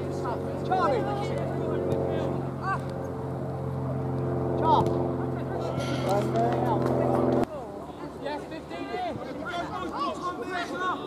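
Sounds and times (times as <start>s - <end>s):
low engine drone: 1.9s - 7.5s
players shouting: 8.8s - 11.0s.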